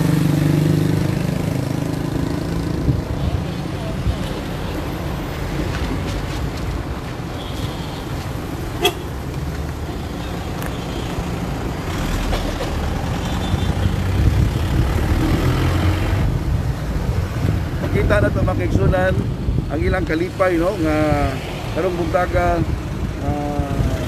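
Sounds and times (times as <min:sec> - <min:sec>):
cars driving past: 0:00.0 - 0:19.7.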